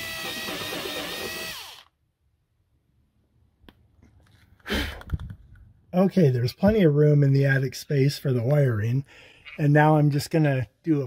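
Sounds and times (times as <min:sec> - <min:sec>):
cordless drill motor whine: 0:00.0 - 0:02.0.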